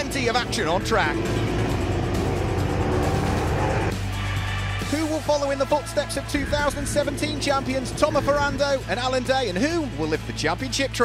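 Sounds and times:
race car engine running hard: 0.0s - 10.4s
background music: 0.0s - 11.0s.

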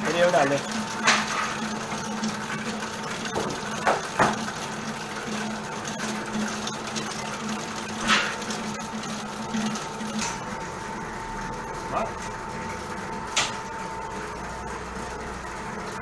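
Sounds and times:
stand mixer motor hum: 0.0s - 16.0s
whisk beating in steel bowl: 0.0s - 16.0s.

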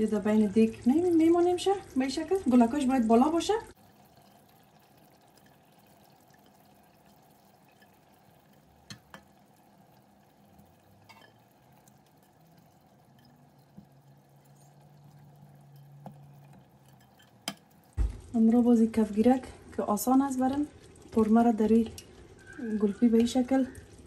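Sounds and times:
soft clicks of vegetables in pot: 6.3s - 9.6s, 10.6s - 18.4s, 20.5s - 24.0s.

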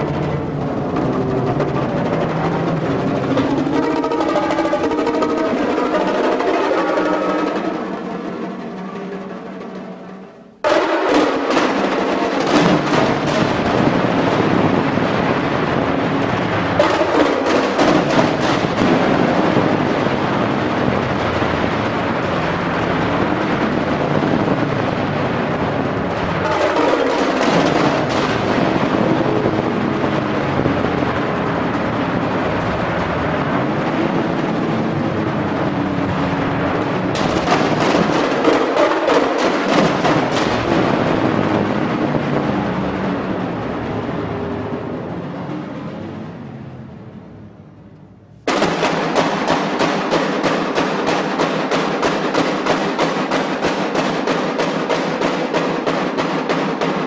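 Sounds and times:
percussion ensemble playing: 0.0s - 33.6s, 36.6s - 43.4s, 48.5s - 57.0s.

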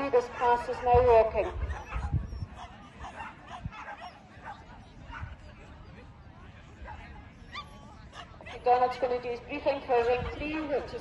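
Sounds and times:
dog barking and yipping: 0.4s - 5.2s.

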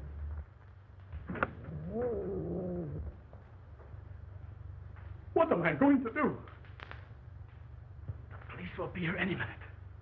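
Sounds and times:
old film soundtrack hum: 0.0s - 10.0s.

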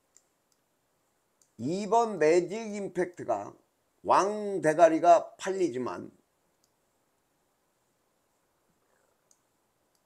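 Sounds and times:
computer mouse clicks: 0.0s - 0.7s, 1.4s - 1.6s, 6.6s - 6.8s, 9.2s - 10.0s.

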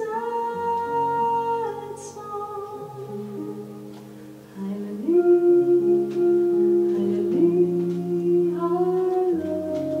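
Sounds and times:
guitar accompaniment: 0.0s - 10.0s
woman singing jazz: 0.0s - 10.0s.

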